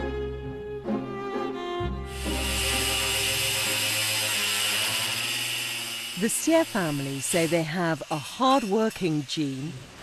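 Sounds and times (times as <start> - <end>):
orchestral string music: 0.0 - 7.7
angle grinder cutting: 2.1 - 10.0.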